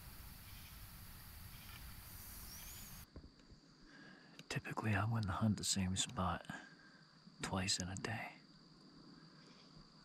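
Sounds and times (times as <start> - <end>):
faint woodland hiss: 0.0 - 10.0
high gliding whistle: 1.5 - 3.0.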